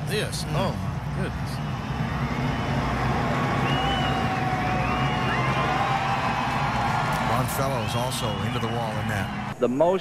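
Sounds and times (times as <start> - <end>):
race car engines passing: 0.0 - 9.6.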